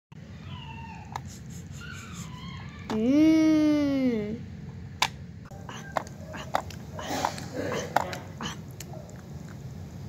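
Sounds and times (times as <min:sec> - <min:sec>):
high-pitched meow-like cries: 0:00.4 - 0:01.1.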